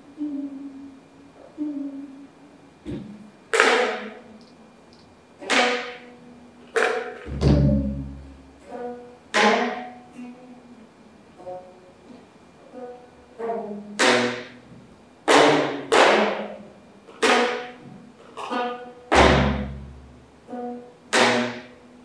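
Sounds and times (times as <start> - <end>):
deep drum thump: 7.3 - 8.2
zither strings struck with stick: 7.3 - 8.5.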